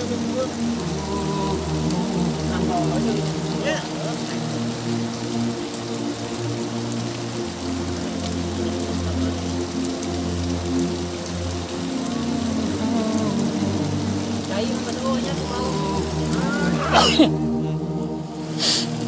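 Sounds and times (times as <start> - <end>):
music with low sustained notes: 0.0 - 19.0
steady rain: 0.0 - 19.0
water splashing down: 8.0 - 17.5.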